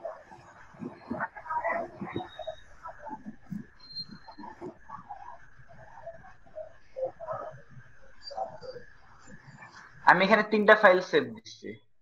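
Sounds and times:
faint muffled human voice: 0.0 - 9.6.

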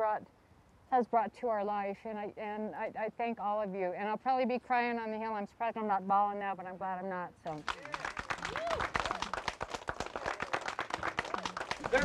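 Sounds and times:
people clapping: 7.5 - 12.0
voices calling out: 10.2 - 12.0.

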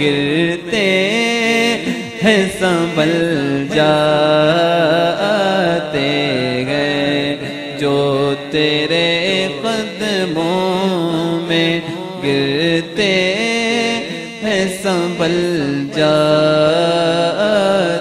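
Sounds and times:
man singing into a microphone: 0.0 - 18.0.

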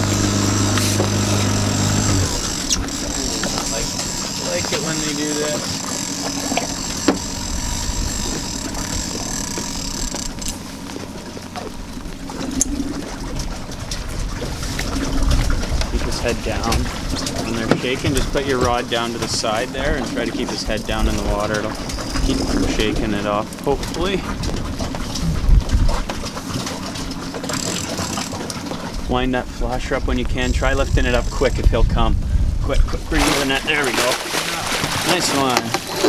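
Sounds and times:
boat engine hum: 0.0 - 36.0
water noise: 0.0 - 36.0
wind: 0.0 - 36.0.

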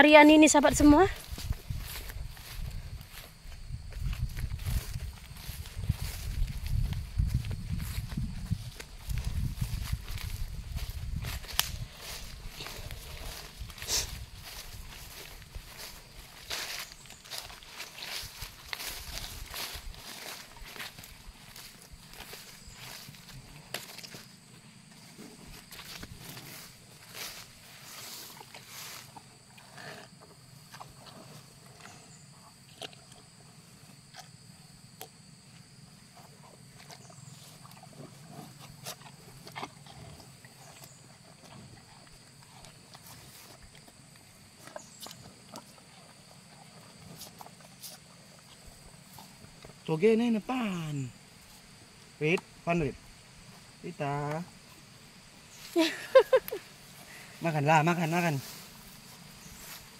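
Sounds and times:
high insect drone: 0.0 - 59.9
cattle eating from bucket: 0.4 - 50.4, 56.6 - 59.9
footsteps through undergrowth: 0.8 - 29.4, 55.5 - 59.9
muzzles rustling in feed: 36.1 - 49.8, 54.6 - 59.9.

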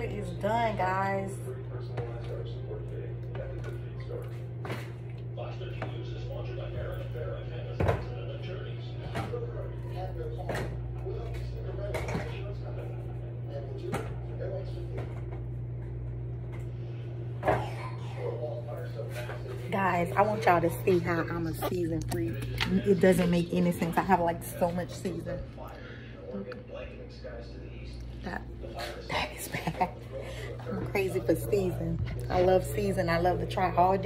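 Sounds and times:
faint voices: 0.0 - 34.0
steady low hum: 0.0 - 34.0.

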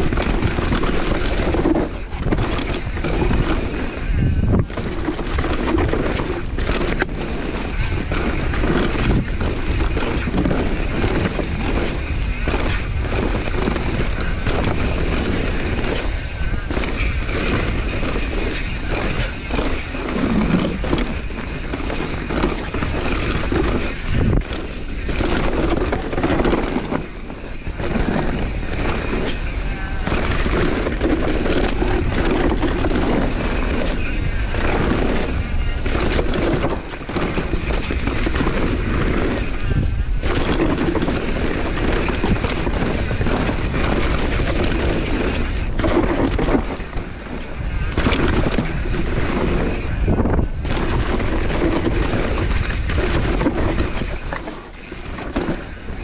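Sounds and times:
bike chain and suspension clatter: 0.0 - 56.0
bike tyres rolling over dirt: 0.0 - 56.0
wind noise on microphone: 0.0 - 56.0.

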